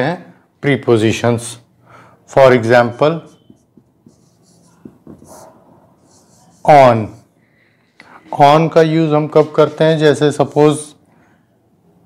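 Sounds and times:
marker scratching on whiteboard: 3.2s - 7.3s.

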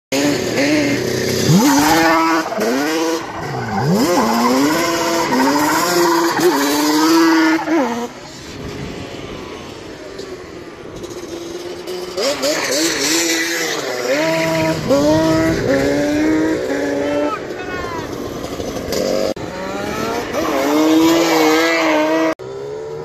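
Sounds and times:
quad engine revving: 0.1s - 8.2s, 10.9s - 23.0s.

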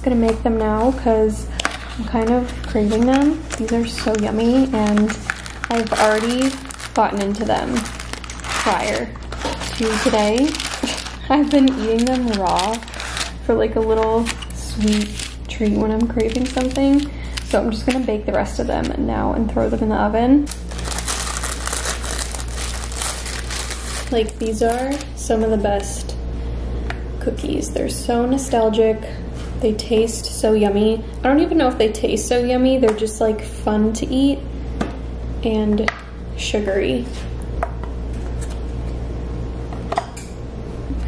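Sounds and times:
steady low hum: 0.0s - 41.0s
plastic packaging crinkling: 1.5s - 18.0s, 20.5s - 25.2s.

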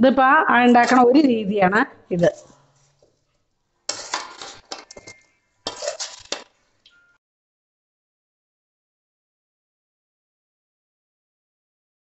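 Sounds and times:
metal spoon scraping a metal pan: 0.7s - 1.2s, 3.9s - 6.5s.

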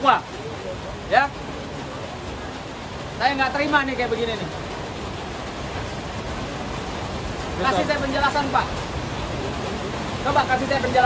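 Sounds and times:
steady hiss-like background noise: 0.0s - 11.0s.

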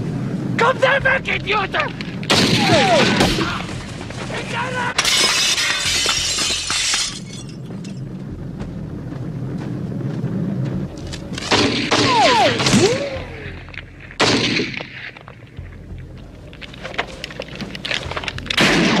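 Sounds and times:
glass shattering: 5.0s - 8.0s
pistol shot: 14.2s - 15.0s, 18.6s - 19.0s.

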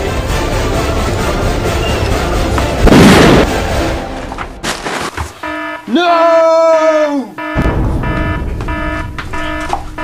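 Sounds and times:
loud gunshot: 2.8s - 3.6s, 7.6s - 9.8s.

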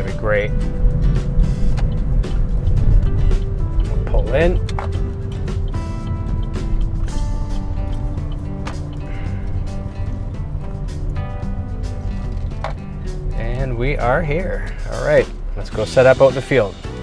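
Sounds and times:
car driving rumble: 0.0s - 17.0s
music with held notes: 0.0s - 17.0s.

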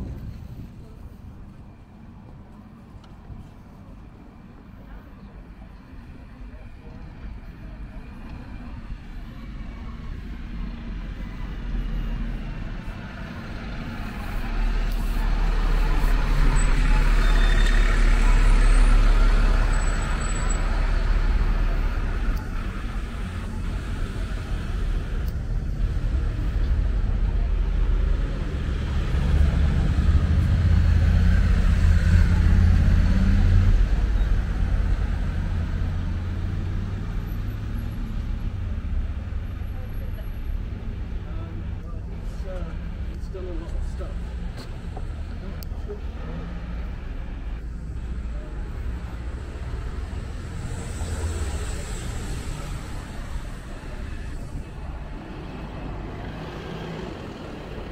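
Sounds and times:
bus engine passing: 0.0s - 57.9s
vehicle engine passing: 9.2s - 57.9s.

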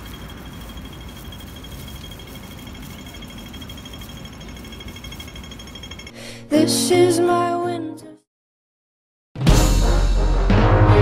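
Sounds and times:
traffic rumble: 0.0s - 6.1s
wind rumble: 0.0s - 6.1s
crossing signal rapid beeping: 0.0s - 6.2s.

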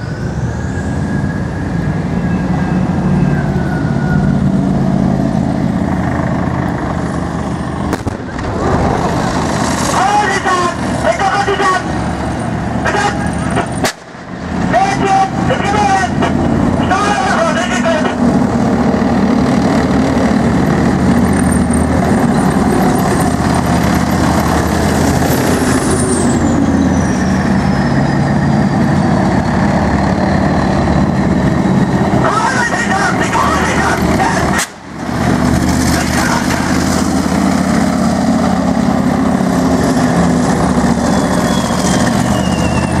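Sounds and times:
diesel engines droning: 0.0s - 43.0s.

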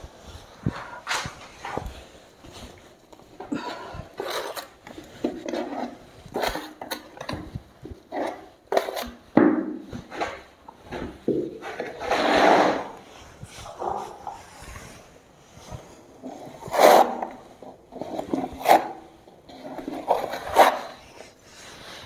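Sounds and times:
trowel scraping plastic bucket: 3.5s - 13.0s, 16.2s - 22.0s.

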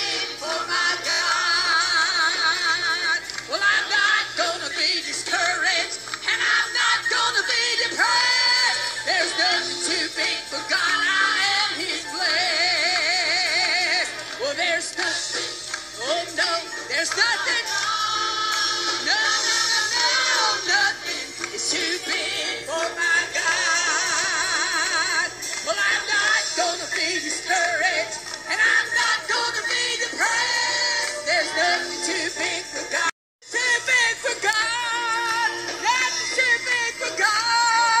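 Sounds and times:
choir singing gospel song: 0.0s - 38.0s.

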